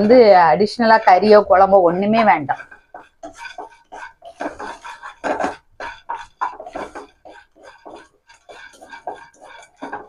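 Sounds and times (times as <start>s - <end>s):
wooden spatula stirring: 0.0s - 10.0s.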